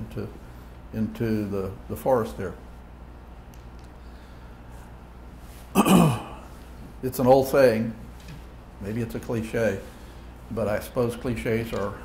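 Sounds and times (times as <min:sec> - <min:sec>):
man clearing his throat: 0:05.7 - 0:06.5.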